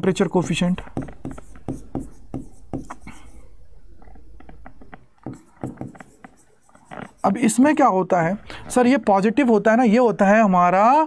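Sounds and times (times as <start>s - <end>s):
chalk tapping and scratching: 0.0s - 8.3s.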